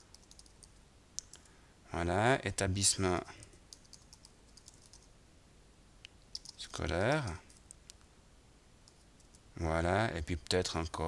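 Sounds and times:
faint keyboard keystrokes: 0:06.3 - 0:08.0.

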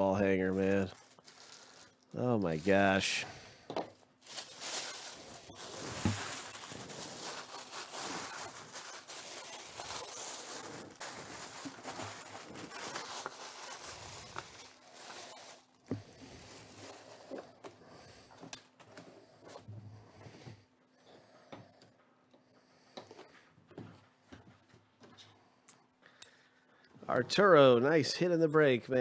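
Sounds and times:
tissue paper rustling: 0:00.6 - 0:03.2, 0:04.2 - 0:17.2.

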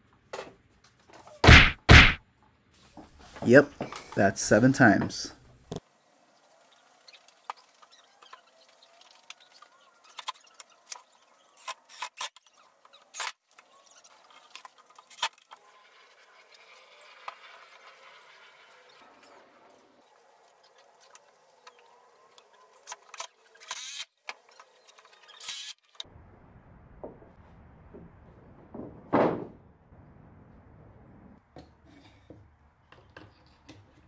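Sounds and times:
loud knock: 0:01.4 - 0:02.2, 0:28.6 - 0:29.7
low hum: 0:26.1 - 0:31.5.

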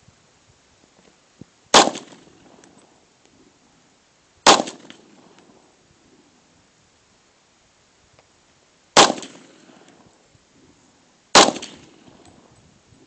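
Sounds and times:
pistol shots with echo: 0:01.8 - 0:02.4, 0:04.5 - 0:05.2, 0:09.0 - 0:09.7, 0:11.4 - 0:12.2.

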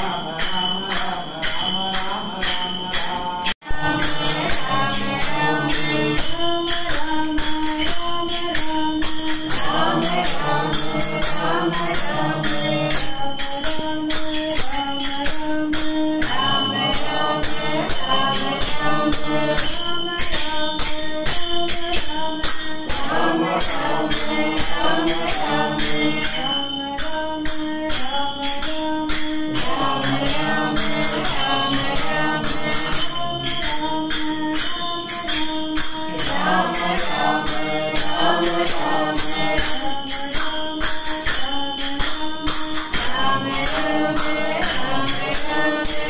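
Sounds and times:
group singing devotional song: 0:00.0 - 0:27.1, 0:29.5 - 0:33.9, 0:35.8 - 0:41.4, 0:42.8 - 0:46.0
hand cymbals clinking: 0:00.0 - 0:46.0.

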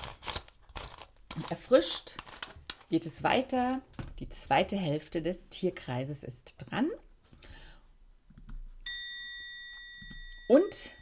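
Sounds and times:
bright bell chime: 0:08.9 - 0:11.0.

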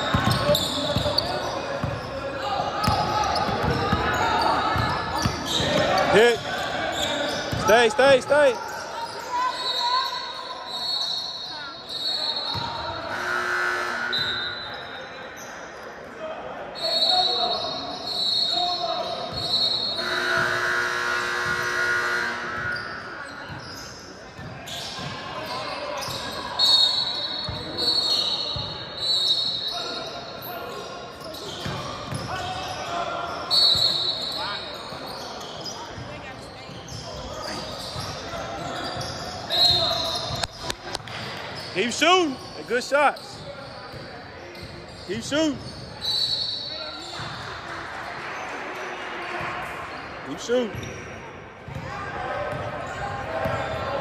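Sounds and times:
sneakers squeaking: 0:00.0 - 0:54.0
basketball bouncing: 0:00.1 - 0:01.2, 0:01.8 - 0:02.0.

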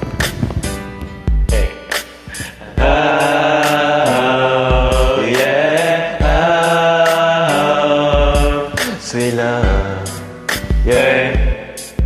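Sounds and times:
karaoke backing track: 0:00.0 - 0:12.0
man vocalising long notes: 0:01.4 - 0:12.0.

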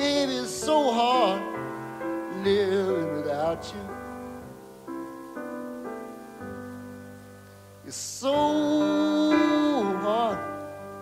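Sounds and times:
slow piano chords: 0:00.0 - 0:11.0.

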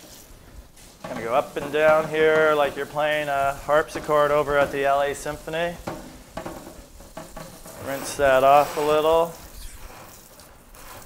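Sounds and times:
sponge scrubbing wires: 0:00.0 - 0:11.0
tap water running onto metal rack: 0:00.1 - 0:11.0.

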